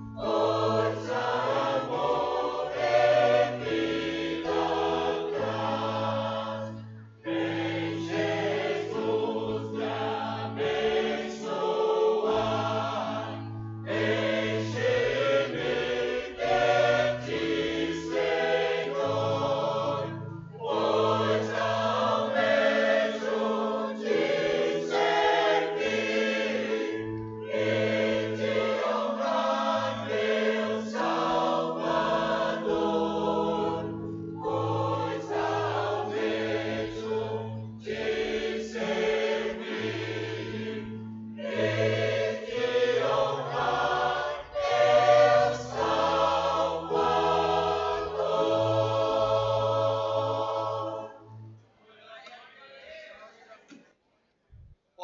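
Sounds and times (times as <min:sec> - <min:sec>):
church choir singing: 0:00.0 - 0:53.2.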